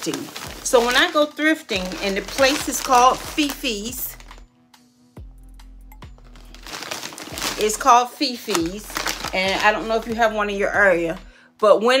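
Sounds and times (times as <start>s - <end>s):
shopping bag crinkling: 0.0s - 4.4s, 6.2s - 11.2s
faint background music: 0.0s - 12.0s.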